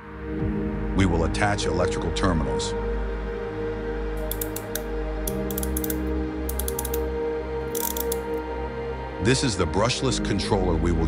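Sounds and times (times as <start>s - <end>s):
background music with low notes: 0.0s - 11.0s
ratcheting crimping tool clicking: 4.2s - 7.1s, 7.7s - 8.4s.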